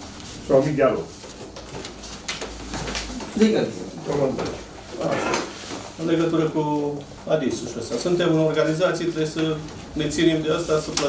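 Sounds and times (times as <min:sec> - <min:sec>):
man speaking indistinctly: 0:00.4 - 0:01.2, 0:03.2 - 0:11.0.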